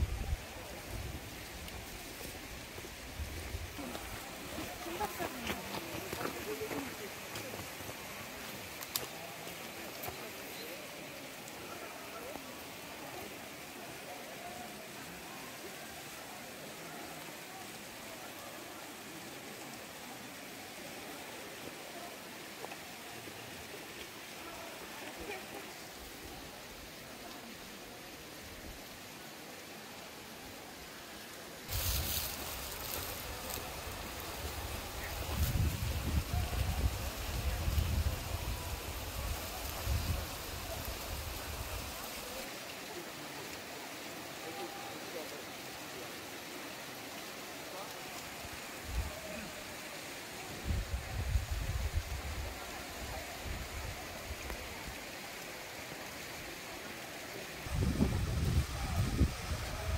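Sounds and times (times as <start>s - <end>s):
faint distant voices: 0.0s - 59.9s
waterfall splashing: 3.7s - 51.2s.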